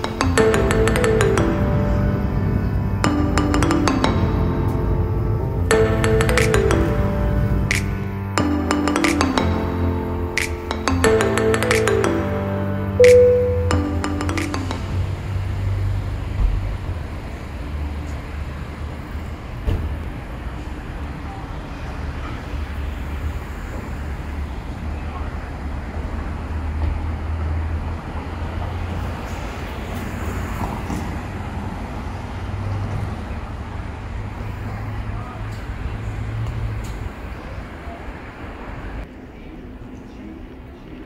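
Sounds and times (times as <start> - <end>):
road traffic rumble: 0.0 - 41.0.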